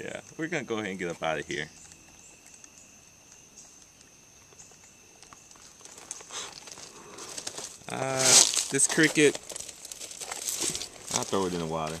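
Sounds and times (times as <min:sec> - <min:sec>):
insects singing: 0:00.0 - 0:12.0.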